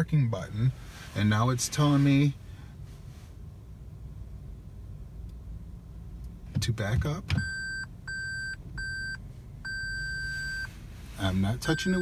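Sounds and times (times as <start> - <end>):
high-pitched car warning beeps: 7.3 - 12.0.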